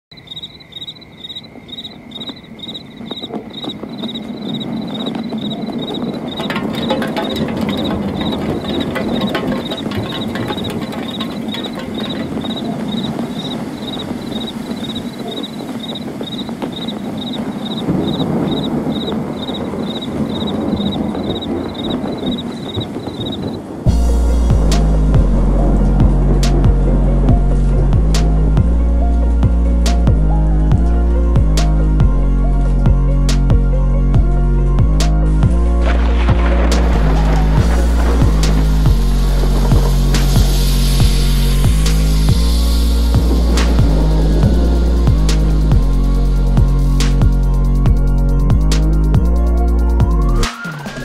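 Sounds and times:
cricket chirping: 0.0s - 29.7s, 35.9s - 51.0s.

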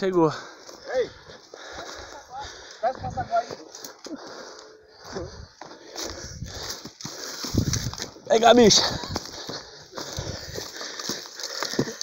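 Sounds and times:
footsteps crunching dry leaves: 5.6s - 12.0s.

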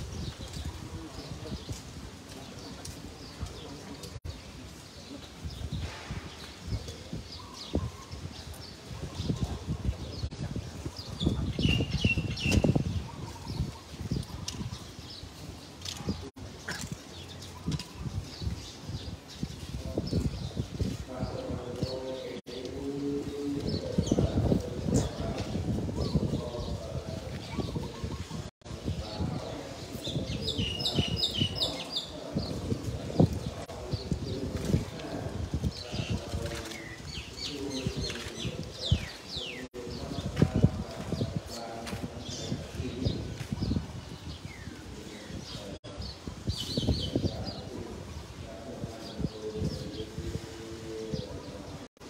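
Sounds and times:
low voices: 0.0s - 52.0s
small birds chirping: 0.0s - 52.0s.

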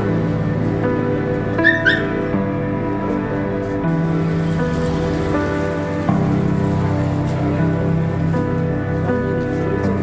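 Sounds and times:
background music: 0.0s - 10.0s
dog whimpering: 1.6s - 2.1s.

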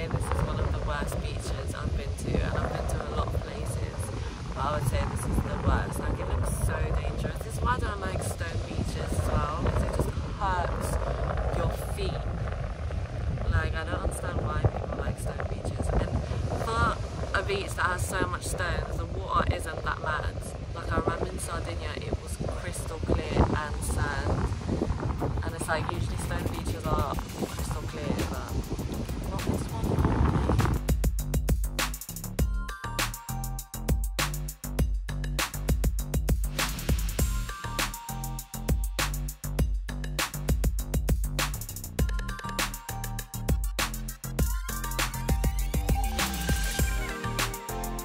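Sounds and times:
wind buffeting microphone: 0.0s - 33.2s.

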